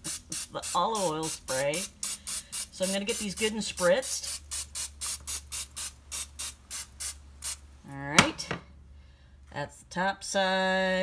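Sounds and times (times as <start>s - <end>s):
cooking spray hissing: 0.0s - 7.6s.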